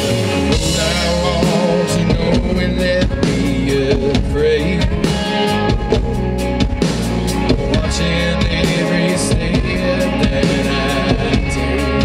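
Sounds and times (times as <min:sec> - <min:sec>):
drum kit beat: 0:00.0 - 0:12.0
electric guitar: 0:00.0 - 0:12.0.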